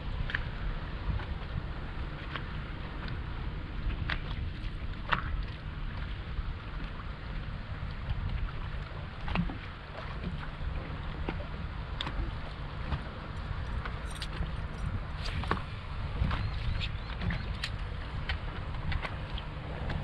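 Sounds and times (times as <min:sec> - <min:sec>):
water slapping against boat hull: 0:00.0 - 0:20.0
wind on microphone: 0:00.0 - 0:20.0.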